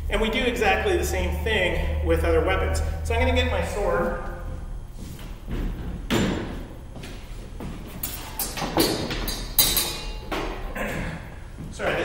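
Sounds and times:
footsteps on a hard floor: 4.4 - 8.0.

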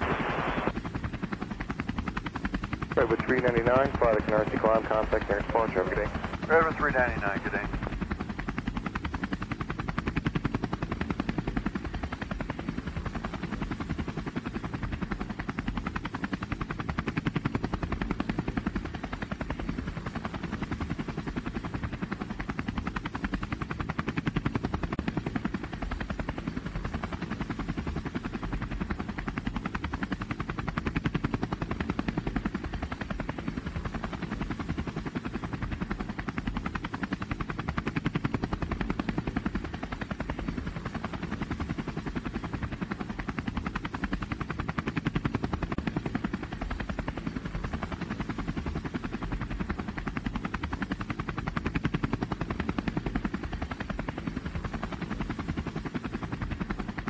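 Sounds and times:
drone propellers buzzing: 0.0 - 9.3.

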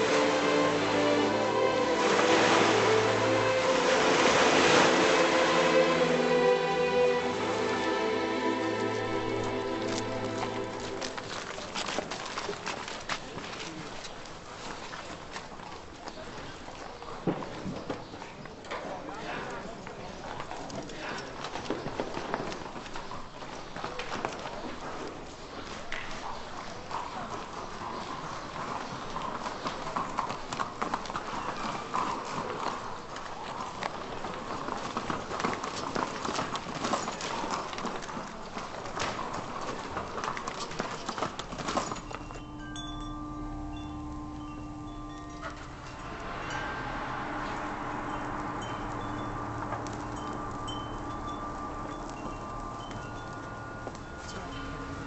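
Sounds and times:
soft film score chime notes: 0.0 - 11.6, 41.7 - 55.0
crowd murmuring: 0.0 - 12.6.

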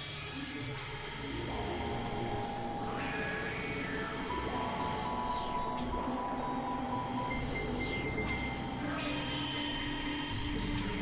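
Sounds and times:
synthesizer drones: 1.2 - 11.0
pulsing high tone: 1.6 - 11.0.

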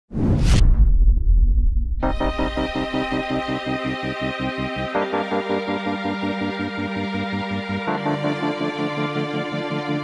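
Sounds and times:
deep boom whoosh: 0.1 - 3.0
low rumble: 0.1 - 3.1.

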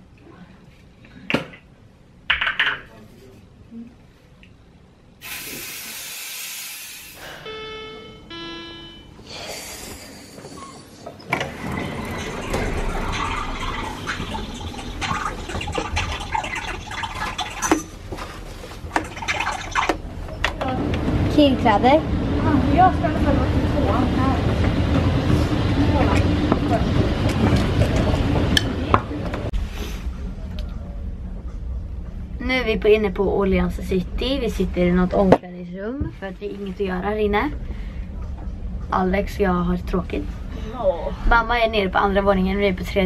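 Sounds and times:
aerosol can spraying hiss: 5.2 - 7.2.

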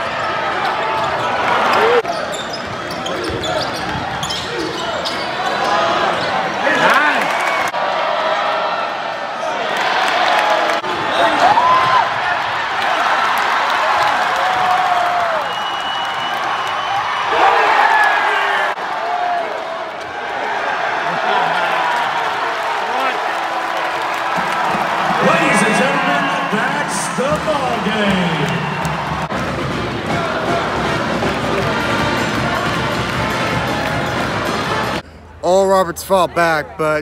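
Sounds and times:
crowd cheering and shouting: 0.0 - 2.2, 5.5 - 35.0
basketball game play: 0.0 - 37.0
music: 27.9 - 35.0.

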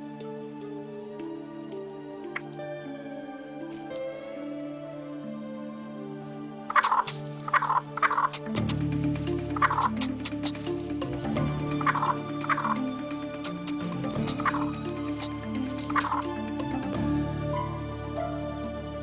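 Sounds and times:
background music: 0.0 - 19.0
bird giving harsh alarm calls: 6.7 - 8.8, 9.5 - 10.7, 11.7 - 12.8, 13.4 - 16.4.

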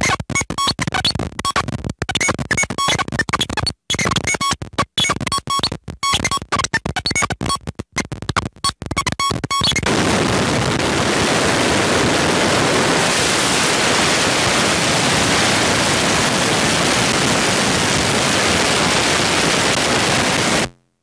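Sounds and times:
stuttering pitched blips: 0.0 - 9.9
noisy digital distortion: 0.0 - 21.0.

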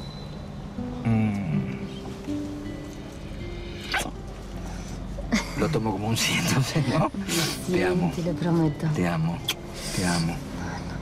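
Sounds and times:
soft background music: 0.2 - 11.0.

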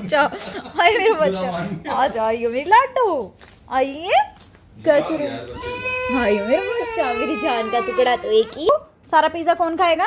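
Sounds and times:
toddler girl crying: 5.1 - 8.7.

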